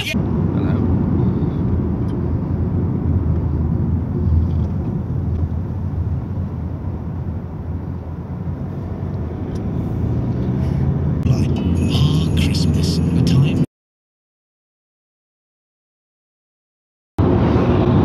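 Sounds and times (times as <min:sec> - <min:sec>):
car engine and tyres rumbling: 0:00.0 - 0:13.7, 0:17.2 - 0:18.0.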